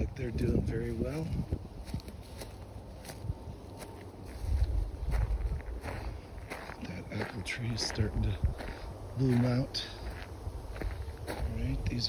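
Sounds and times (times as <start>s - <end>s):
footsteps on grass: 0.0s - 12.0s
wind rumble on microphone: 0.0s - 12.0s.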